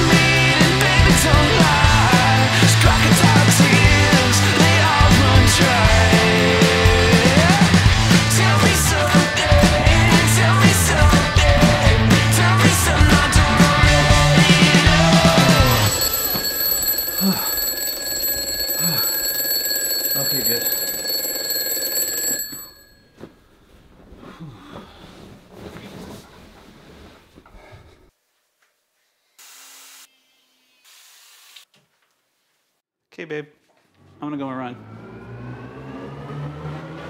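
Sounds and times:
rock music: 0.0 - 16.1
high electronic ringing tone: 14.1 - 23.0.

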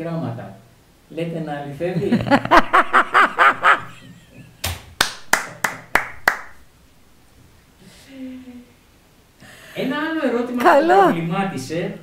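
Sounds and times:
woman laughing: 2.0 - 4.6
hands clapping: 4.6 - 6.6.

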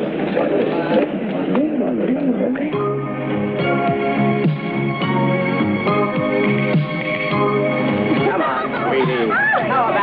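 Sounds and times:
murmur of voices: 0.0 - 3.8, 8.0 - 10.0.

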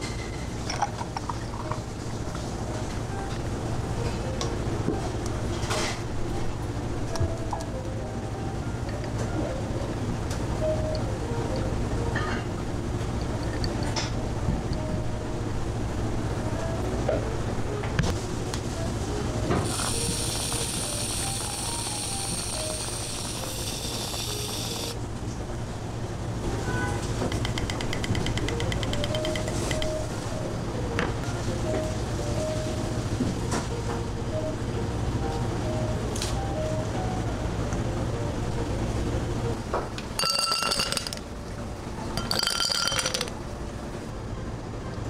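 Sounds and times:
whipped cream dispenser spraying: 19.6 - 25.0
glass ringing: 40.2 - 41.2, 42.1 - 43.3
ice cubes clattering into glass: 40.2 - 41.2, 42.2 - 43.3.

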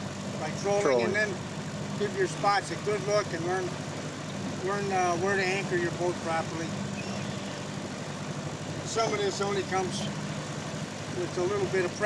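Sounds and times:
outboard motor running: 0.0 - 12.0
water splashing against boat: 0.0 - 12.0.

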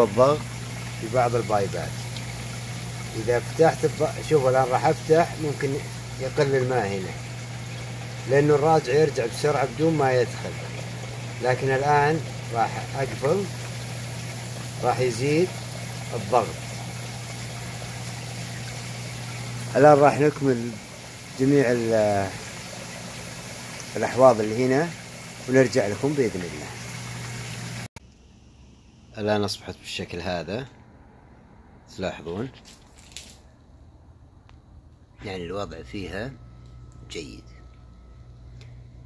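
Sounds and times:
pump humming: 0.0 - 27.9.

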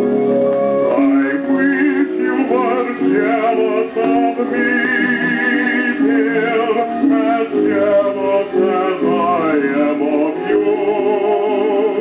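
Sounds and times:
old dance orchestra record: 0.0 - 12.0
wavering vibrato melody: 1.0 - 11.3.

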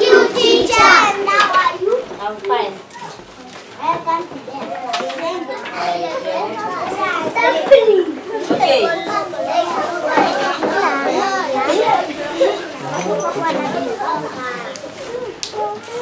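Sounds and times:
children talking and calling out: 0.0 - 16.0.

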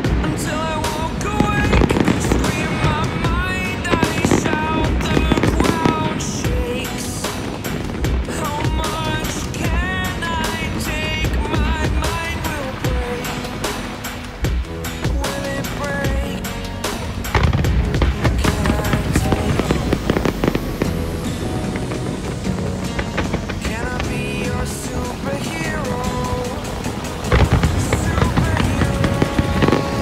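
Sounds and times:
fireworks booming and crackling: 0.0 - 30.0
loud music: 0.0 - 30.0.

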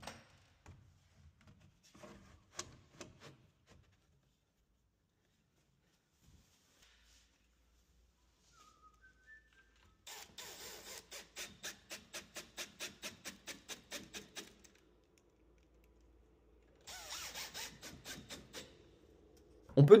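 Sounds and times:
drill driving screws: 10.1 - 14.7, 16.8 - 18.8.

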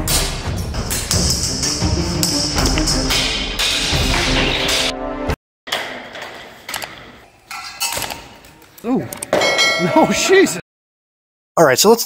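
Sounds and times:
bell-like ding ringing: 9.4 - 10.0.

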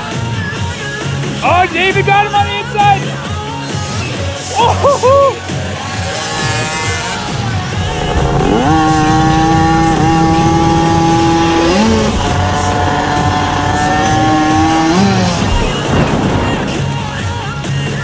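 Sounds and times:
music: 0.0 - 18.0
dirt bike engine revving: 5.4 - 17.7.

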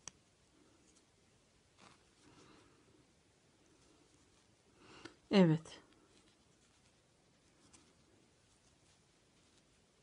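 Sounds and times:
crochet hook and yarn handling: 0.0 - 10.0.

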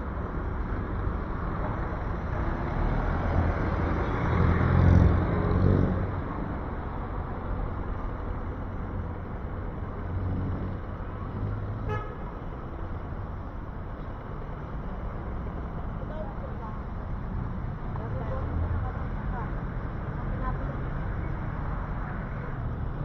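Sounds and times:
street traffic noise: 0.0 - 23.0
car horn toot: 11.9 - 12.2.

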